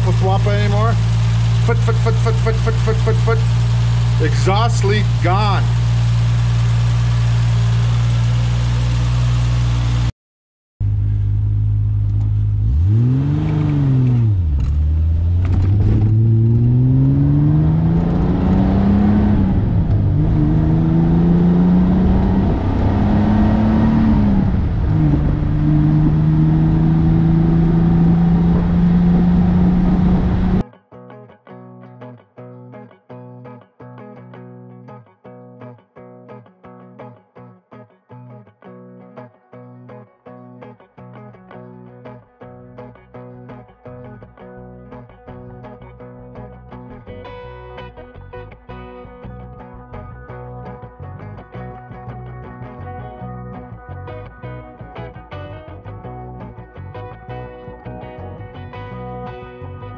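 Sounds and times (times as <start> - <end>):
guitar music: 0.0 - 9.3, 11.8 - 59.9
car engine idling: 0.0 - 10.1, 10.8 - 30.6
car engine revving and accelerating: 0.0 - 10.1, 11.6 - 30.6.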